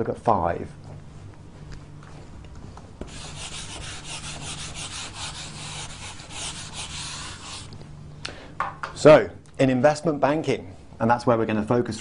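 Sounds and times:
eraser wiping whiteboard: 0:03.0 - 0:07.7.

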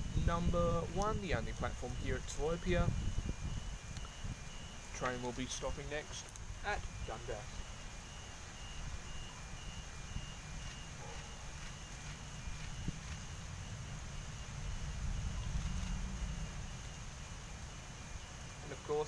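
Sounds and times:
heavy rain falling: 0:00.0 - 0:19.0
faint short high beeps: 0:03.2 - 0:13.0
low rumble: 0:12.3 - 0:18.1.

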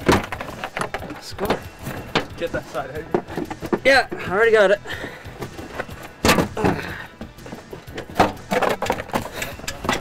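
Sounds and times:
plastic liner cracking and clicking: 0:00.0 - 0:02.4.

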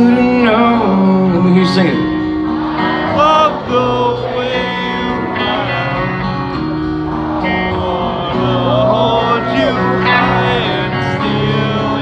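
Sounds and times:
acoustic guitar chords: 0:00.0 - 0:12.0
live rock band music: 0:00.0 - 0:12.0
person singing: 0:07.6 - 0:12.0.

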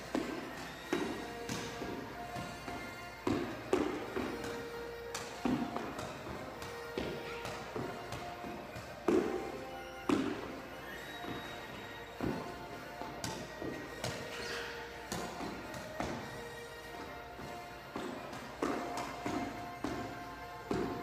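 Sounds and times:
feet and footbag thudding on court floor: 0:00.0 - 0:21.0
music with held notes: 0:00.0 - 0:21.0.

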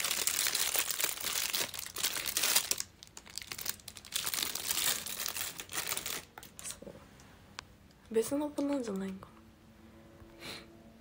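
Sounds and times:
packaging crinkling: 0:00.0 - 0:06.8.

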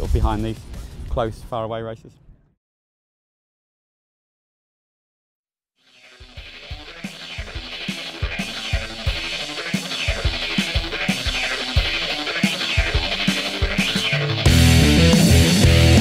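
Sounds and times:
background music with drum beat: 0:00.0 - 0:01.0, 0:06.1 - 0:16.0.

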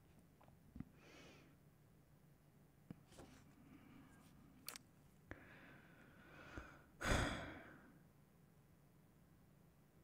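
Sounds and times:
person sighing: 0:06.4 - 0:07.9.

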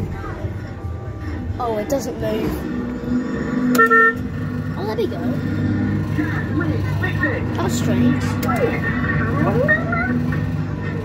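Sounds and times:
kiddie ride motor humming: 0:00.0 - 0:11.0.

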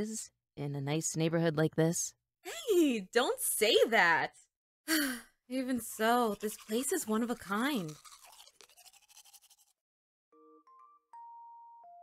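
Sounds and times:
toothbrush brushing teeth: 0:05.5 - 0:09.8
chiming tune: 0:10.4 - 0:12.0.

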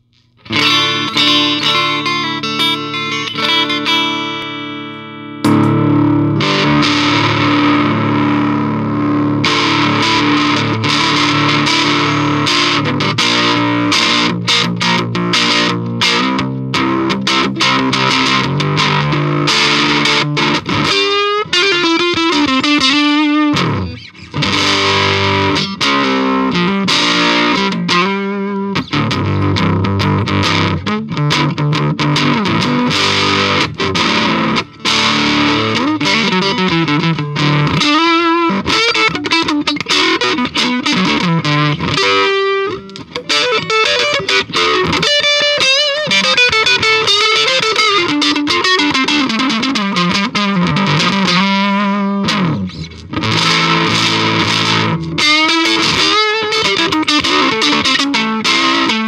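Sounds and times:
distorted electric guitar: 0:00.0 - 0:59.0.

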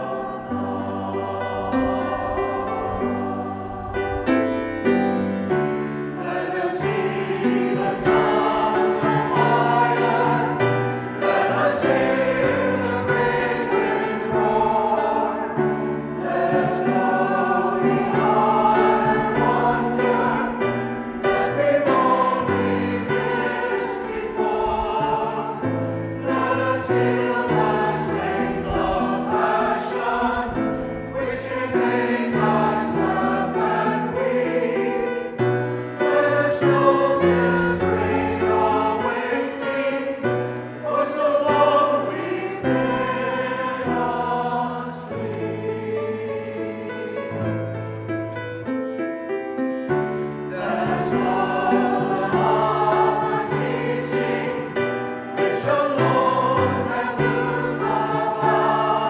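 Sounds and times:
choir singing a hymn: 0:00.0 - 0:49.1, 0:49.8 - 0:59.0
grand piano accompaniment: 0:00.0 - 0:59.0.

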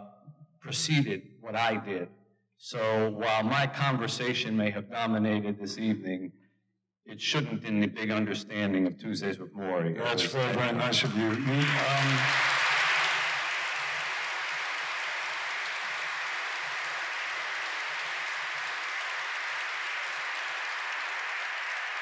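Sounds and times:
audience applauding: 0:10.0 - 0:22.0.

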